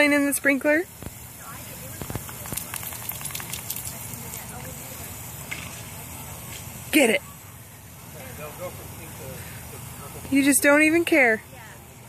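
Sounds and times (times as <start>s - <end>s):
lawn sprinkler spraying water: 0.0s - 12.0s.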